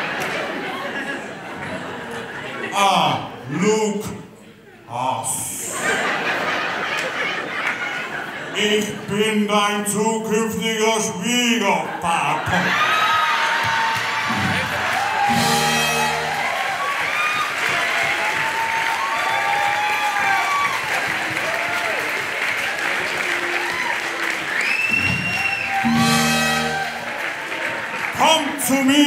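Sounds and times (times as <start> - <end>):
audience applauding and cheering: 12.3 - 29.0
music: 14.3 - 16.8, 24.9 - 27.4
sustained musical chords: 15.2 - 16.6, 25.8 - 27.2.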